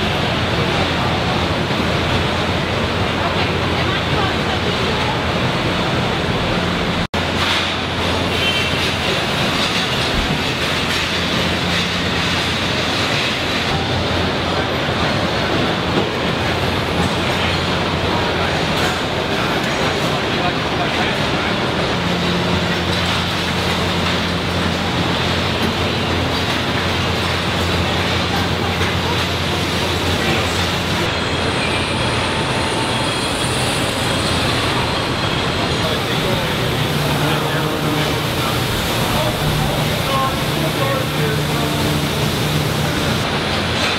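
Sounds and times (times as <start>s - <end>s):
conveyor and machinery noise: 0.0s - 43.9s.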